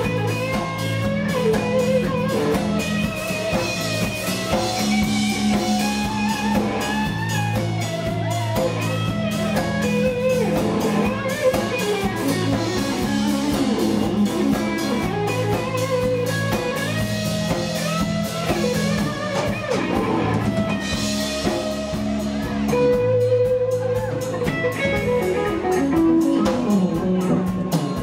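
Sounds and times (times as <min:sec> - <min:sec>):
bass guitar: 0:00.0 - 0:28.0
drum kit: 0:00.0 - 0:28.0
electric guitar: 0:00.0 - 0:28.0.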